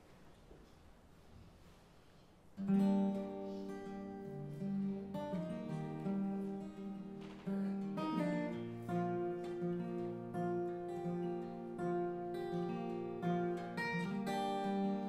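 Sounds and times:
acoustic guitar chords: 2.6s - 15.0s.

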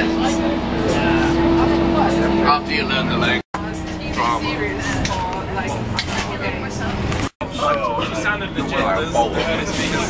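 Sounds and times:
bus engine droning: 0.0s - 10.0s
passengers chatting: 0.0s - 10.0s.

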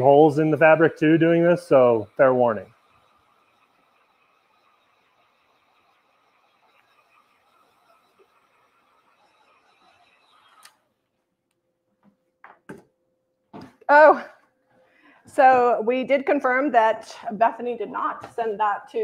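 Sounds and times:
heat gun fan whine: 0.0s - 10.8s
small knocks: 12.0s - 12.9s.

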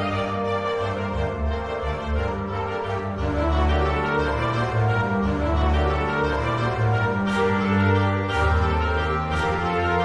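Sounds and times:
instrumental christmas music: 0.0s - 10.0s.

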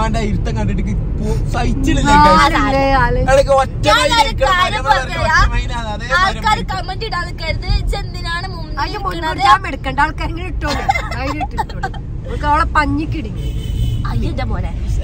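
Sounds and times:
people talking: 0.0s - 13.4s, 14.1s - 15.0s
vehicle rumble: 0.0s - 15.0s.

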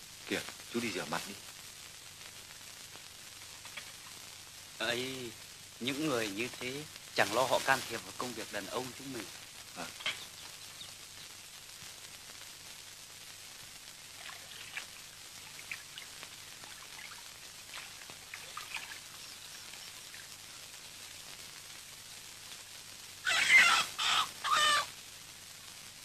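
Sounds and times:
water splashing in a washbasin: 14.2s - 19.2s
loud animal call: 23.2s - 24.9s.

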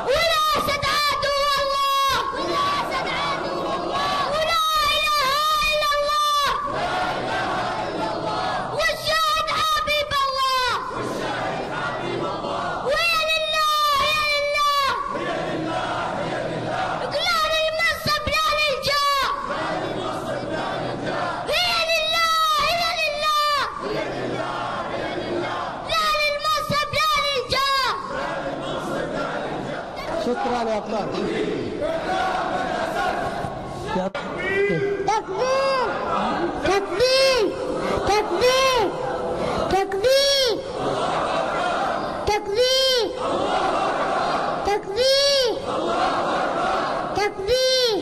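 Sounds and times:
boy chanting through a microphone: 0.0s - 6.8s, 7.9s - 11.2s, 11.9s - 15.2s, 17.0s - 20.5s, 21.2s - 23.9s, 25.8s - 28.2s, 36.5s - 40.8s, 42.2s - 43.2s, 44.6s - 45.7s, 47.1s - 48.0s
crowd shouting and cheering: 0.0s - 48.0s
high-pitched voice shouting: 47.2s - 48.0s.

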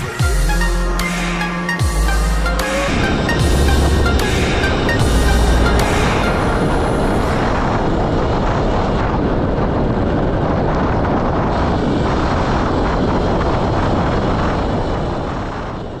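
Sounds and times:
wind on microphone: 0.0s - 16.0s
electric dirt bike rolling noise: 6.5s - 16.0s.

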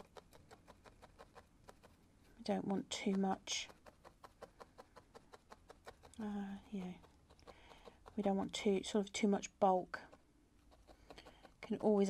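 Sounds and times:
felting needle clicking: 0.0s - 12.0s.

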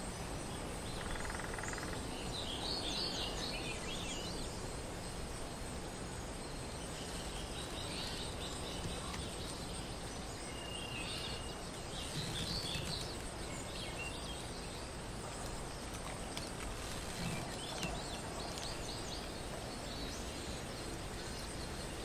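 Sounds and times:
steady background hiss: 0.0s - 22.0s
faint bird chirps and calls: 0.6s - 4.7s, 6.3s - 22.0s.

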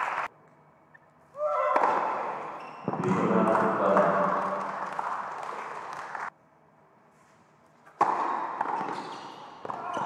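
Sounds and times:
voices echoing: 1.4s - 5.0s
tennis ball bouncing on hard court: 1.7s - 4.4s, 7.9s - 10.0s.

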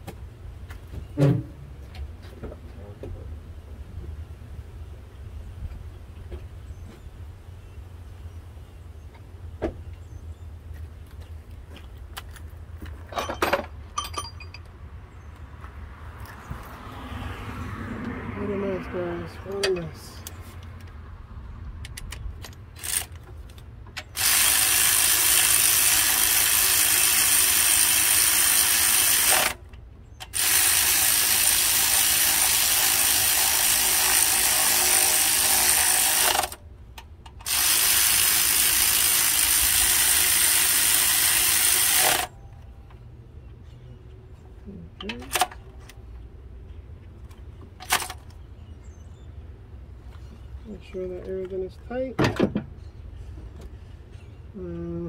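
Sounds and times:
ratchet wrench running fast: 22.8s - 23.1s, 24.1s - 29.6s, 30.3s - 36.6s, 37.4s - 42.3s.

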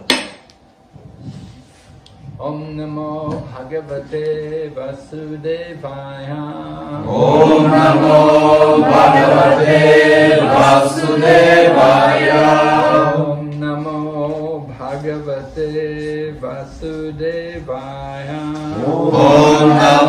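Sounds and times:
group of voices chanting: 7.0s - 13.4s, 18.7s - 20.0s.

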